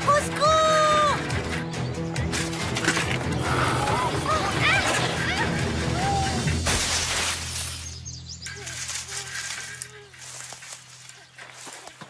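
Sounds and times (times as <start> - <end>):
background music: 0.0 - 10.5
bicycle crashing into bush: 6.6 - 7.9.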